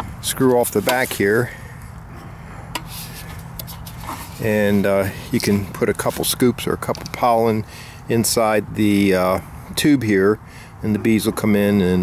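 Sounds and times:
soft handling clicks and rubs: 0.6 - 1.4, 2.2 - 7.2.

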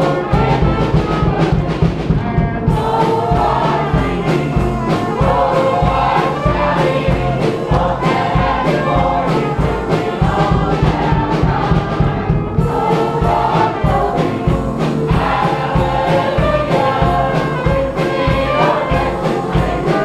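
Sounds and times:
band with beat and bass: 0.0 - 20.0
choir singing gospel music: 0.0 - 20.0.

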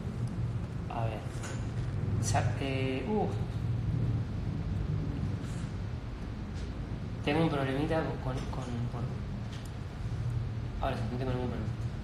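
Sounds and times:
low rumble: 0.0 - 7.3.

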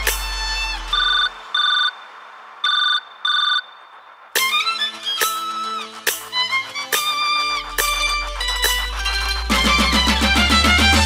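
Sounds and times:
dance music: 0.0 - 2.6, 3.9 - 11.0
bass note: 7.8 - 11.0.

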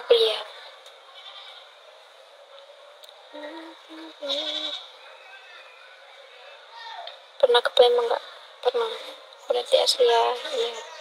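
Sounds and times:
woman humming: 3.4 - 4.6.

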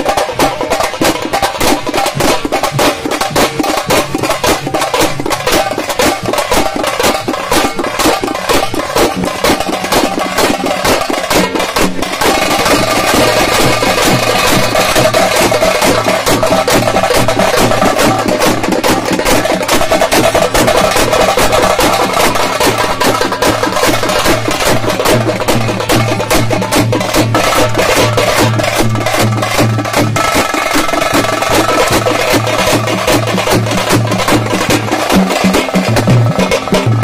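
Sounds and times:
frame drums beaten with sticks: 0.0 - 37.0.

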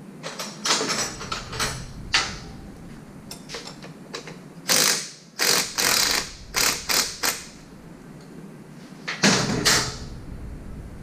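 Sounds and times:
ratchet clicking: 4.6 - 7.6.

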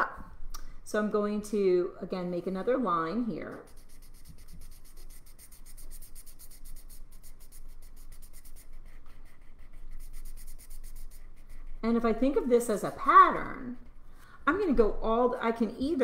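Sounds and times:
marker scribbling on paper: 3.5 - 13.8.

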